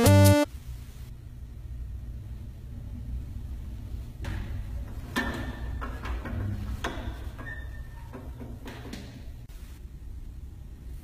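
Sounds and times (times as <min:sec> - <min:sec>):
steady low rumble: 0:00.5 - 0:05.0.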